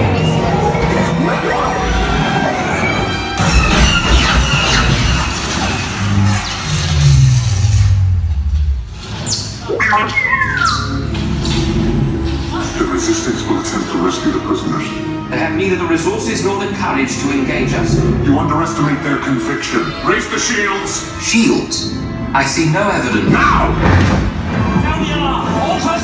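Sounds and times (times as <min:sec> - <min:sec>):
sci-fi battle sound effects: 0:00.0 - 0:08.3.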